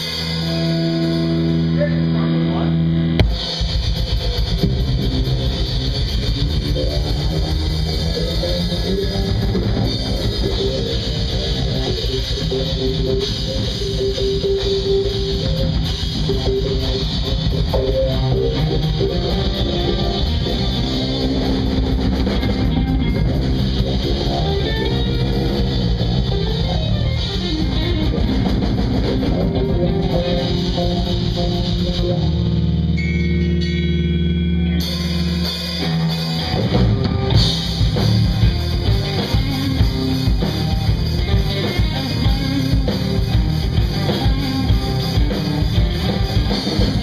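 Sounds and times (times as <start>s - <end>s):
bass guitar: 0.0s - 47.0s
drum kit: 0.0s - 47.0s
electric guitar: 0.0s - 47.0s.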